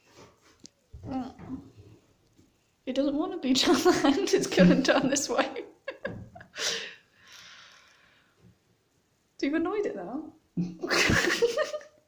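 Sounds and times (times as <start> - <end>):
faint hiss: 5.9 - 9.4.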